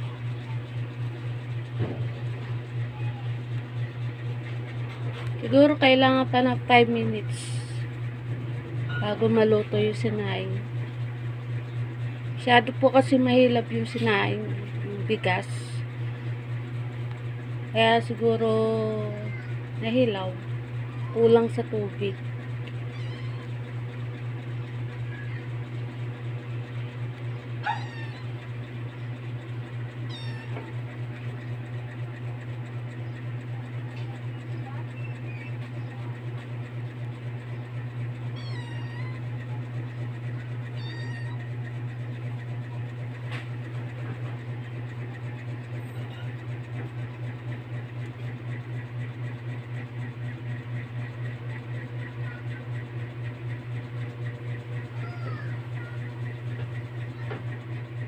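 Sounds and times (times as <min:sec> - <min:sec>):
steady low hum: 0:00.0 - 0:58.0
high gliding animal calls: 0:27.6 - 0:28.4.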